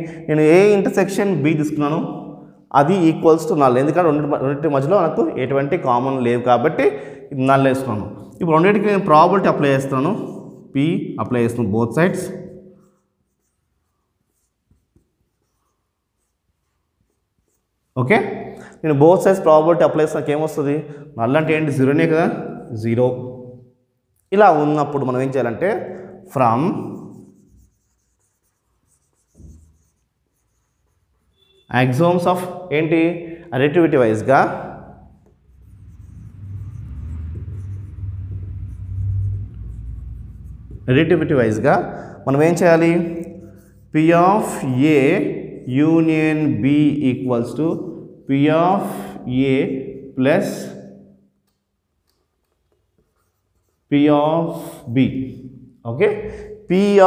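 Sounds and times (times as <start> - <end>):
marker scratching on whiteboard: 11.5 - 18.2, 25.2 - 32.6, 34.1 - 46.4, 52.0 - 54.0
man talking: 24.3 - 27.0, 31.7 - 34.8, 40.8 - 43.3, 43.9 - 50.8, 53.9 - 57.0
brief low sound: 35.8 - 41.3.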